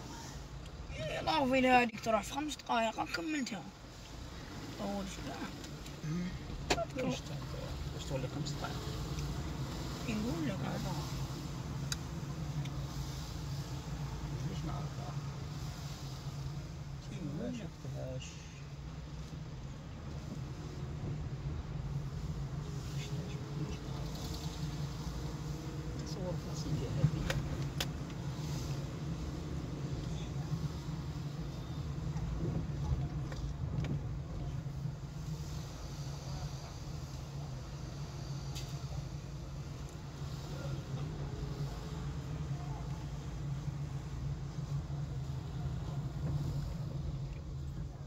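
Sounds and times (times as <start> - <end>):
car engine and road noise: 0.0 - 48.0.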